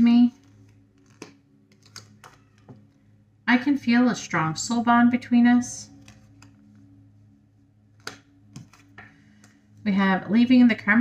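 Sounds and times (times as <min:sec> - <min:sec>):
low steady hum: 0:00.0 - 0:11.0
cards clicking on a table: 0:00.5 - 0:02.8, 0:08.0 - 0:09.6.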